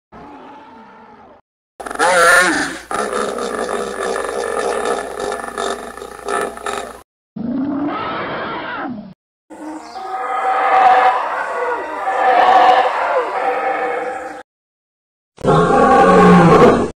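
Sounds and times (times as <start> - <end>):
animal roaring calls: 0.2 - 14.4, 15.4 - 16.9.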